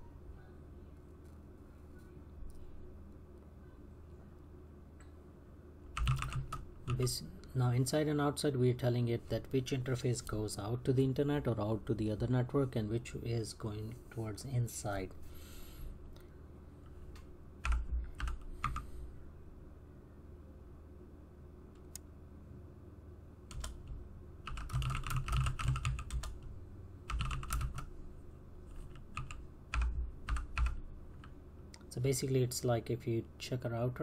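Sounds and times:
typing on computer keyboard: 0:06.0 - 0:07.0, 0:17.6 - 0:18.8, 0:23.5 - 0:26.5, 0:27.1 - 0:27.9, 0:28.7 - 0:31.3.

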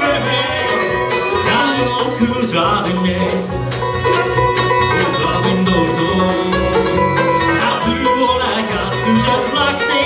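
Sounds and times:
acoustic guitar: 0:00.0 - 0:10.0
banjo: 0:00.0 - 0:10.0
fiddle: 0:00.0 - 0:10.0
mandolin: 0:00.0 - 0:10.0
upright bass: 0:00.0 - 0:10.0.

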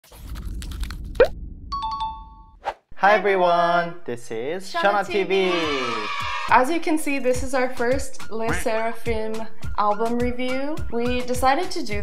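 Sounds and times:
quick rising pop: 0:00.0 - 0:01.6
low rumble: 0:00.2 - 0:01.8.

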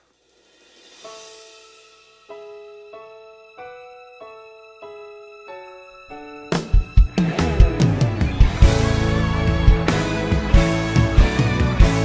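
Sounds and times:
keyboard piano chord: 0:07.2 - 0:12.0.

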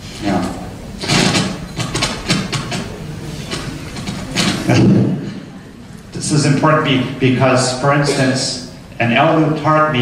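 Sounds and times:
rumbling and crackling over speakers: 0:00.0 - 0:10.0.

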